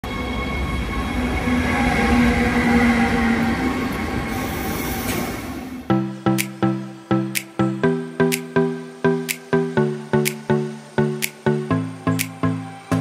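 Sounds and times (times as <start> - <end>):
train wheels on rails: 0.1 - 5.9.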